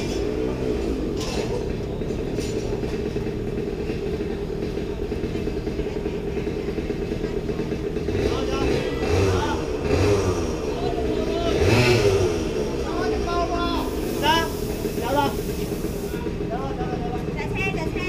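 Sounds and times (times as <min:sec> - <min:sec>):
go-kart engines idling: 0:00.0 - 0:18.0.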